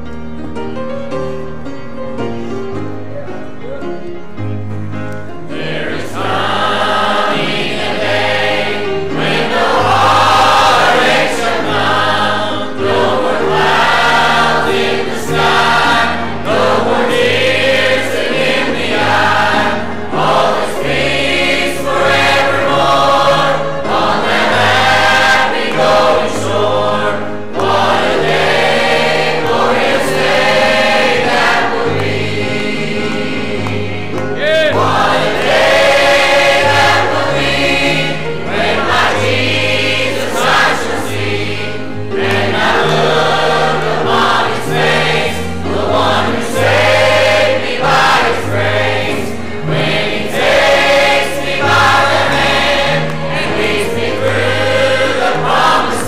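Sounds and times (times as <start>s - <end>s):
congregation and choir singing hymn: 0.0s - 56.0s
instruments playing along: 0.0s - 56.0s.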